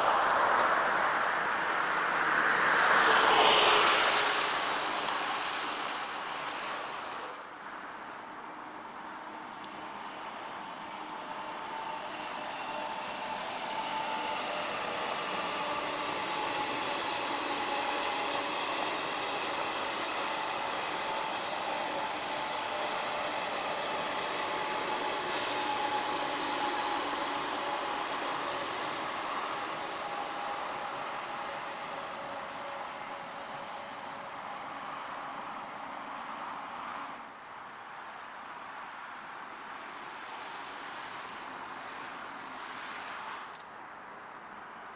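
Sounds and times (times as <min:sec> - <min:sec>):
train passing: 0:00.0 - 0:44.9.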